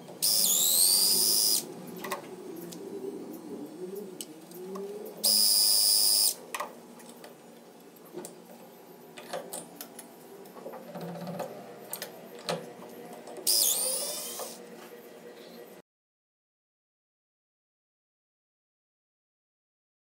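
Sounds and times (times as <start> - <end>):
cordless drill whine: 0.0 - 1.7, 5.2 - 6.4, 13.4 - 14.6.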